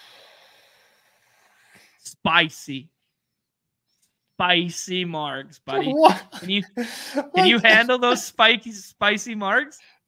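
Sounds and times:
person exhaling through nose: 0:00.0 - 0:01.9
person breathing in: 0:00.0 - 0:02.0, 0:06.8 - 0:07.4.

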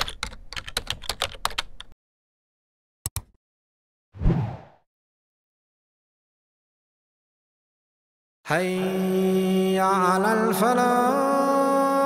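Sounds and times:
computer keyboard typing: 0:00.0 - 0:02.0.

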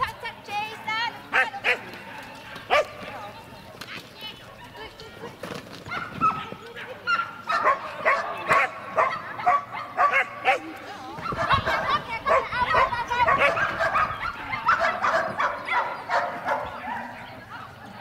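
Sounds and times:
dog barking in excited bursts: 0:02.7 - 0:03.0, 0:05.9 - 0:17.3.

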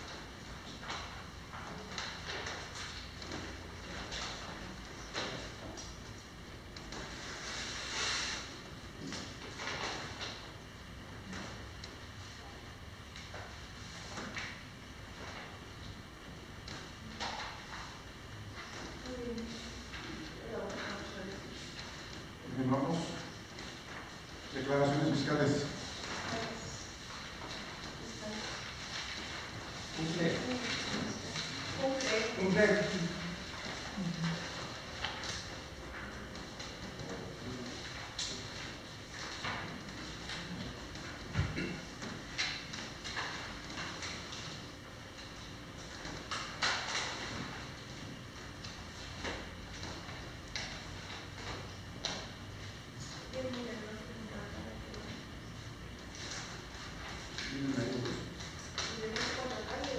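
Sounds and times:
low room hum: 0:00.0 - 0:59.9
papers rustling and shuffling: 0:17.0 - 0:59.9.

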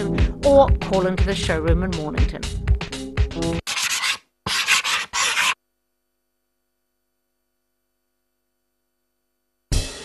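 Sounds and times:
paintbrush strokes rasping: 0:03.6 - 0:05.6.

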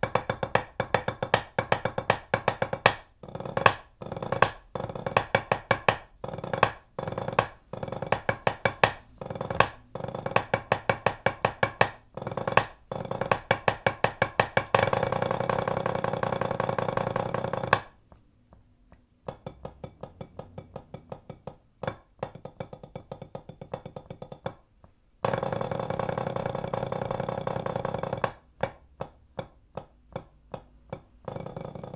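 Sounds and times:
drum roll on practice pad: 0:00.0 - 0:18.0, 0:19.3 - 0:24.6, 0:25.2 - 0:29.5, 0:30.1 - 0:31.9
sticks on practice pad: 0:00.0 - 0:31.9.

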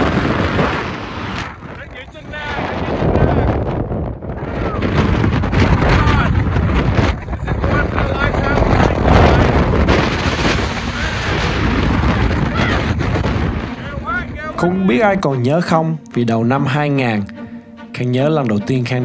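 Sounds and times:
wind buffeting microphone: 0:00.0 - 0:15.8
man talking and exclaiming: 0:13.8 - 0:17.3.

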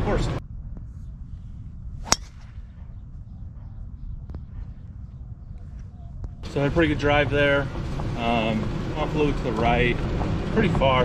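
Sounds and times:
low rumble: 0:00.0 - 0:11.0
golf club striking ball: 0:02.0 - 0:02.6.

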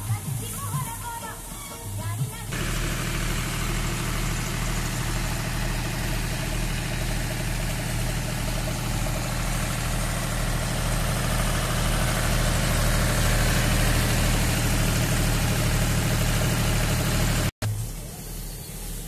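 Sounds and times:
tractor diesel engine running: 0:00.0 - 0:19.0
thresher rushing noise: 0:02.5 - 0:17.5.

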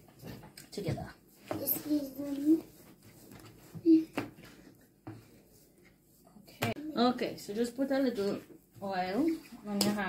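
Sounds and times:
woman speaking: 0:00.7 - 0:01.2, 0:06.6 - 0:10.0.

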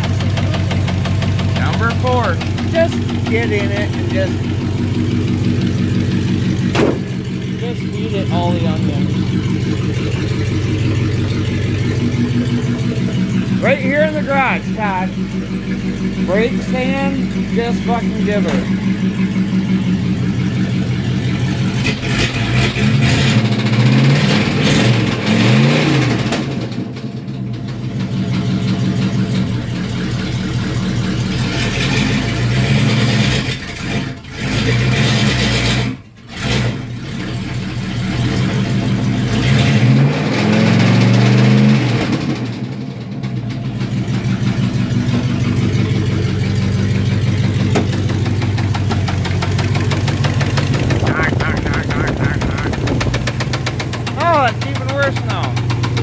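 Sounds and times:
car engine idling and revving: 0:00.0 - 0:56.0.

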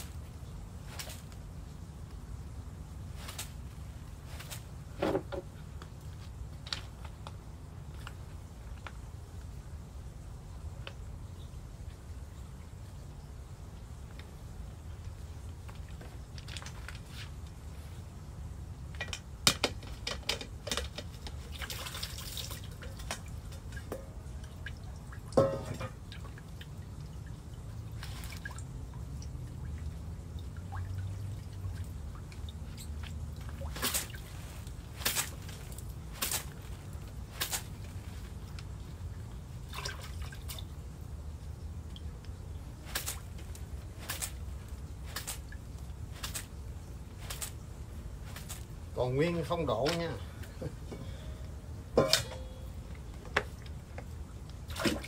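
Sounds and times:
low steady rumble: 0:00.0 - 0:55.0
water dripping and splashing: 0:00.0 - 0:55.0.

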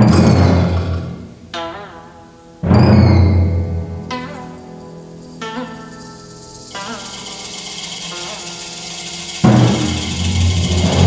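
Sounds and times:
held pitched notes with bends: 0:01.3 - 0:11.0
loud deep drum roll: 0:09.5 - 0:11.0.

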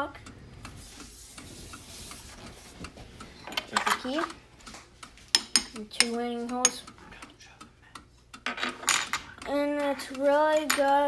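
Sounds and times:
rubbing and rustling of handling: 0:00.8 - 0:05.4.

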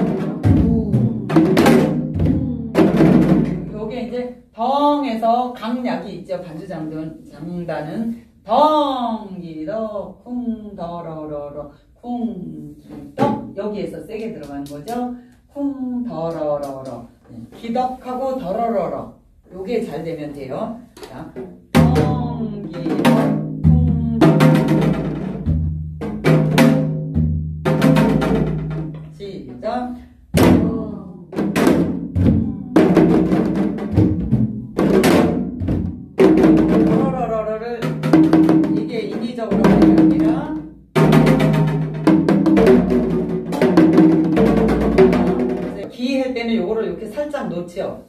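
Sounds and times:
hourglass drum rhythm: 0:00.0 - 0:03.8, 0:21.4 - 0:29.2, 0:30.3 - 0:45.9.

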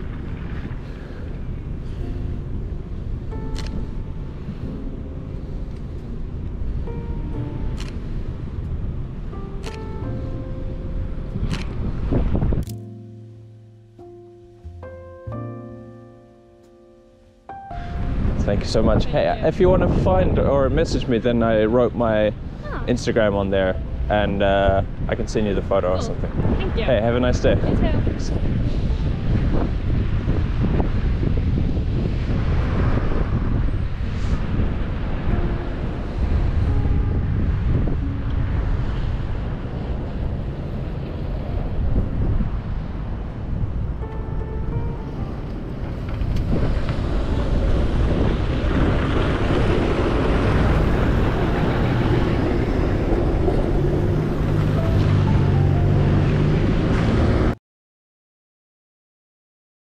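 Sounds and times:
cars passing on slushy road: 0:00.0 - 0:04.7, 0:28.1 - 0:44.0, 0:45.2 - 0:57.6
wind on microphone: 0:00.0 - 0:09.4, 0:10.9 - 0:12.7, 0:17.7 - 0:57.6
low vehicle drone: 0:00.0 - 0:57.6.

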